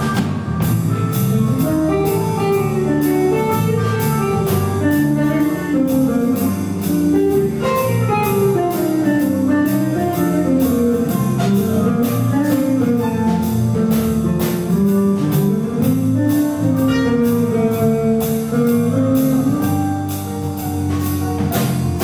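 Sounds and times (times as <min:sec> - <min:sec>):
drums with cymbal strokes: 0:00.0 - 0:22.0
electric bass: 0:00.0 - 0:22.0
electric guitar melody: 0:00.0 - 0:22.0.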